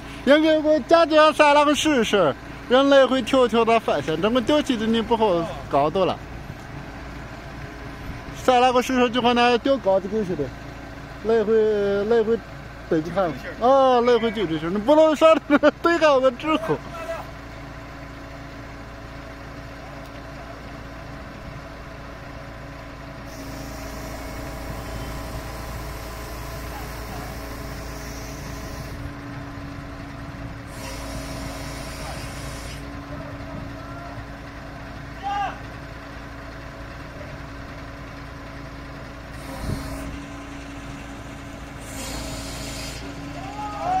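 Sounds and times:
diesel engine running: 0.0s - 44.0s
hissing air bursts: 26.0s - 29.0s, 30.7s - 32.8s, 41.8s - 43.1s.

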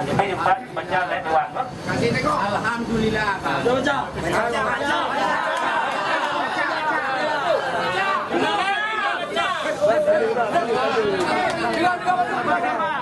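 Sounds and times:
crowd of men talking and calling: 0.0s - 13.0s.

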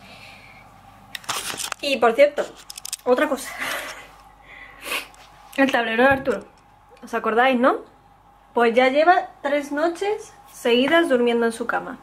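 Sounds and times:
low room hum: 0.0s - 12.0s
camera handling rustling: 1.2s - 1.8s, 2.6s - 3.1s.

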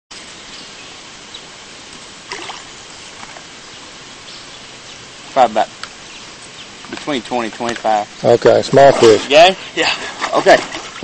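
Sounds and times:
outdoor background hiss: 0.1s - 11.0s
water splashing softly: 1.0s - 11.0s.

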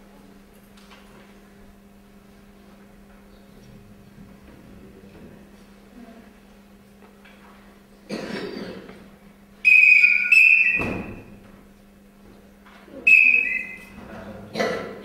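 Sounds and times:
shrill whistle blasts: 9.6s - 11.3s, 13.1s - 14.0s.

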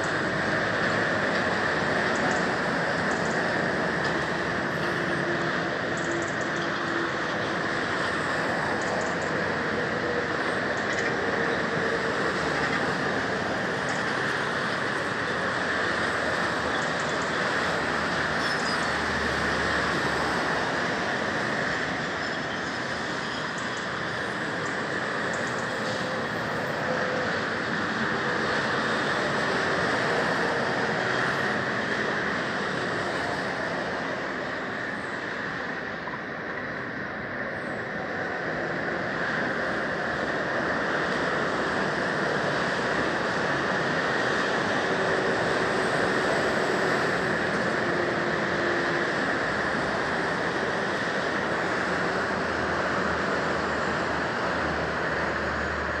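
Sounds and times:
motorway traffic noise: 0.0s - 56.0s.

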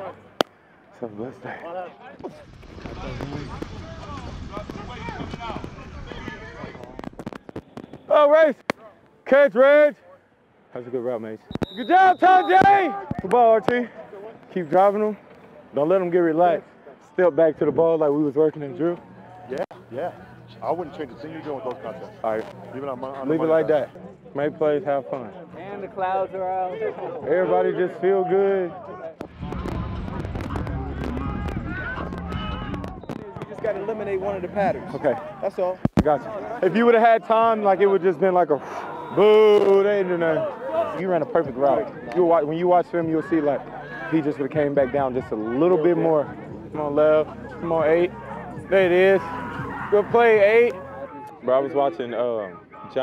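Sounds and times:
people talking in background: 0.0s - 53.0s
low outdoor rumble: 2.3s - 7.2s, 29.2s - 35.4s
steady low rumble: 29.2s - 33.0s.

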